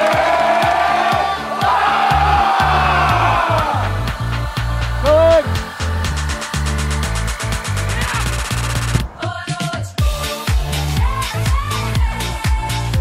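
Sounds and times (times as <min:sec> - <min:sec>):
boys shouting together: 0:00.0 - 0:03.8
background music with steady beat: 0:00.0 - 0:13.0.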